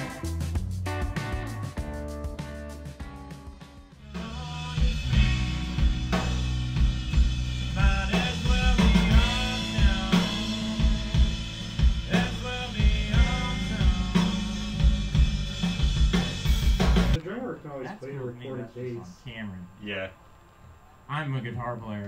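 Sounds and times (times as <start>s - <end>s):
loud rock band music: 0.0s - 17.2s
man speaking: 17.2s - 20.2s, 21.1s - 22.0s.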